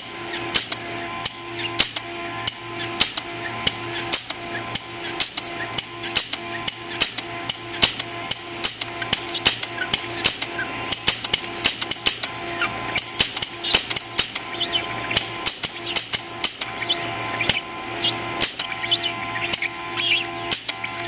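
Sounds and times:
printer motors whining: 0.0 - 21.0
sharp irregular clicks: 0.5 - 12.3.

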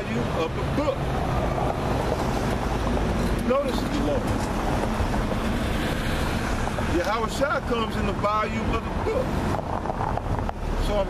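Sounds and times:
low rumble of traffic: 0.0 - 11.0
wind buffeting the microphone: 8.1 - 11.0.

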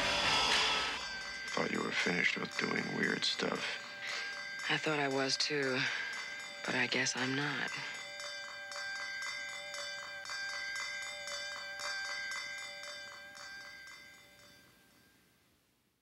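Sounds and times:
bell-like ringing tones: 0.0 - 15.6.

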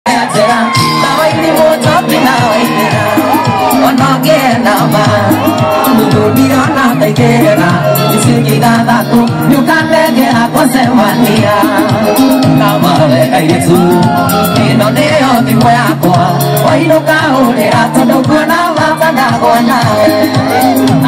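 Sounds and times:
bass-driven backing music: 0.1 - 21.0
crowd shouting and cheering: 0.1 - 21.0
man singing into microphone: 0.1 - 21.0.

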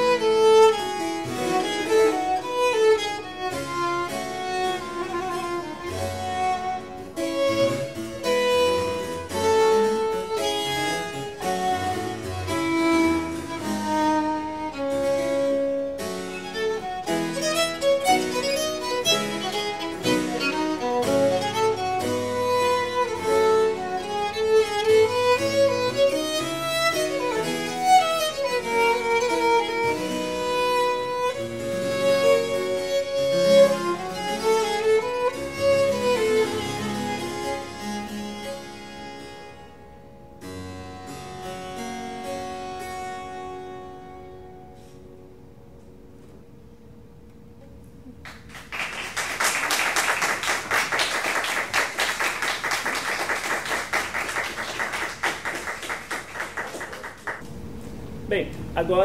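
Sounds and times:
harpsichord accompaniment: 0.0 - 44.2
violin melody: 0.0 - 45.6.

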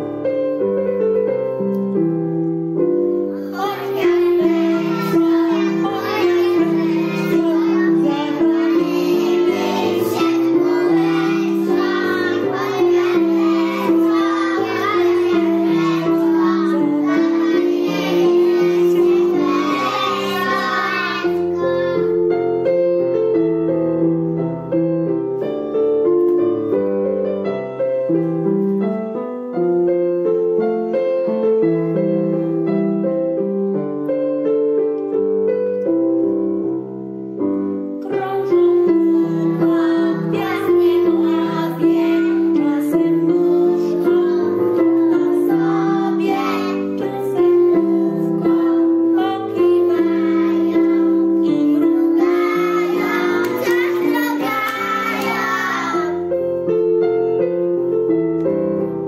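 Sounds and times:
keyboard accompaniment: 0.0 - 59.0
children singing: 3.4 - 22.2, 38.1 - 56.3.

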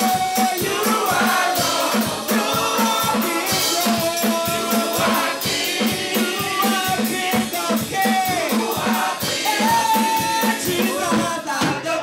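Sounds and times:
gospel choir singing over beat: 0.0 - 12.0.

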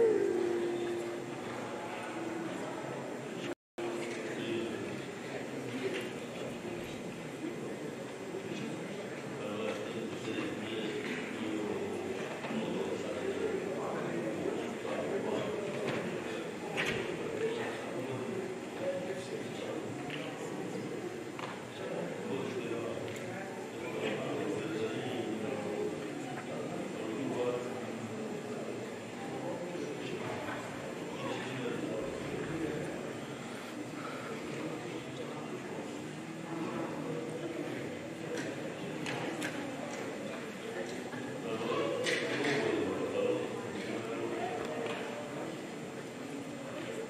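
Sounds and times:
murmur of many people chatting: 0.0 - 47.0.

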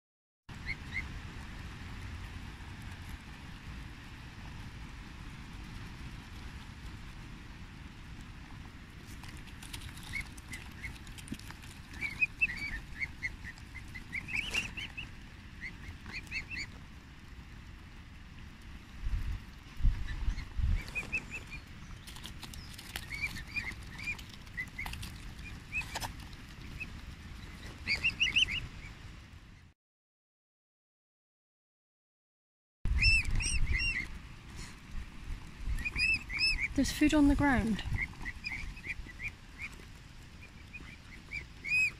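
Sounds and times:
cygnets peeping: 0.5 - 1.2, 8.1 - 17.8, 18.4 - 29.7, 32.9 - 41.9
low rumble: 0.6 - 29.5.

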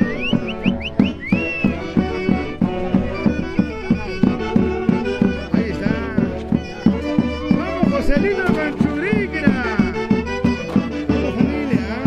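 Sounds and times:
folk dance band music: 0.0 - 12.0.

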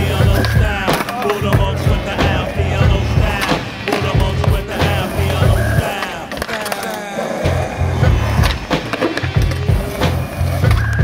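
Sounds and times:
repeating bass line: 0.0 - 5.9, 7.5 - 8.7
hip-hop beat: 0.0 - 11.0.

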